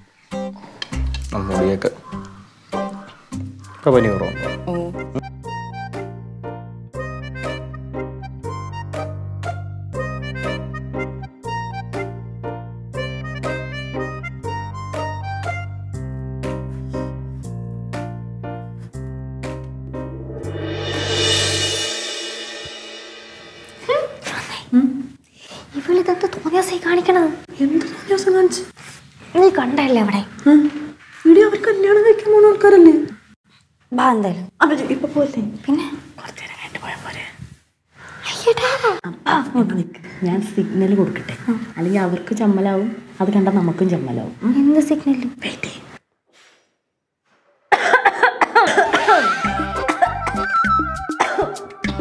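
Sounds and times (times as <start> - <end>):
held bass notes: 4.1 - 23.0, 49.4 - 51.2
cymbal swell: 20.0 - 24.6
woman coughing: 47.7 - 50.5, 51.1 - 51.8.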